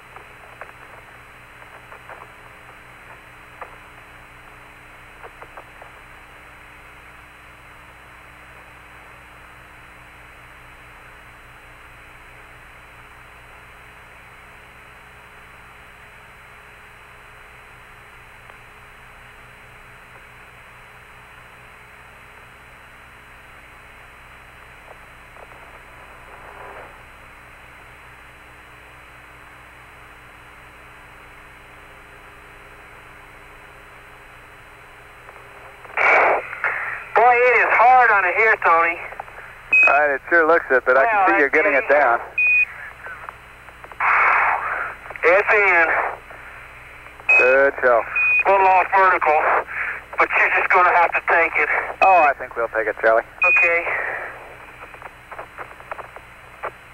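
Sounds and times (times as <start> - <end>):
radio crackle burst: 0.0 - 7.4, 23.4 - 28.5, 31.1 - 56.9
low steady hum: 0.0 - 56.9
radio static hiss: 0.0 - 56.9.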